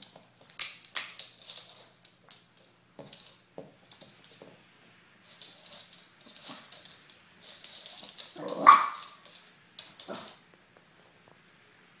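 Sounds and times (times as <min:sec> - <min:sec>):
scratchy scuffling: 0:05.2 - 0:10.4
dog barking: 0:08.4 - 0:09.1.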